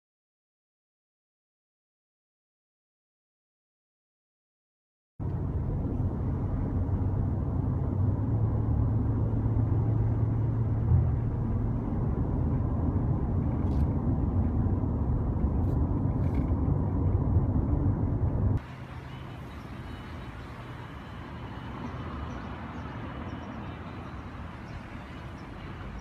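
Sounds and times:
car road noise from inside: 5.2 - 26.0
low engine hum: 5.2 - 26.0.

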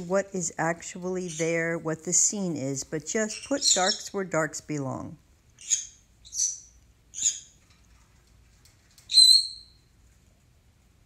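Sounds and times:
bird chirping: 3.1 - 4.3, 5.6 - 7.6, 9.1 - 9.9.

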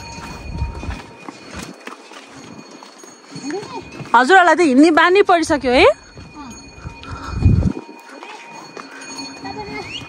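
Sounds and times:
hooves clopping on rocky trail: 0.0 - 10.0.

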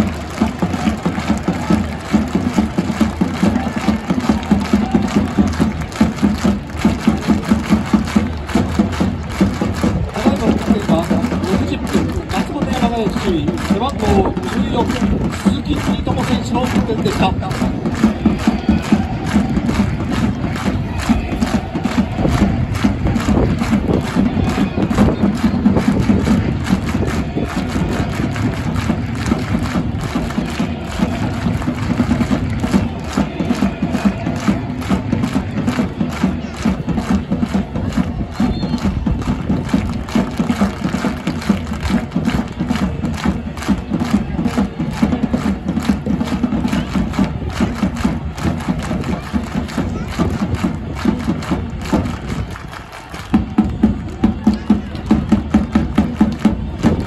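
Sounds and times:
crowd clapping in unison: 0.0 - 57.0.

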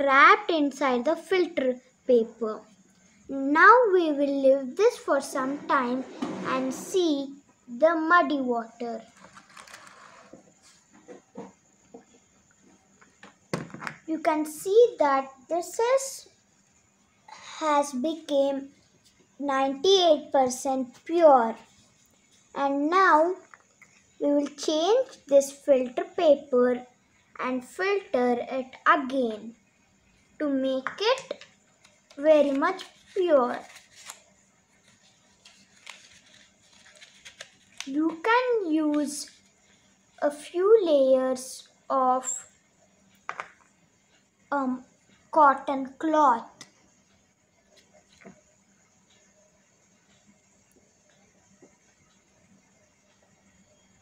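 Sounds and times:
paper filter rustling: 32.1 - 38.3.

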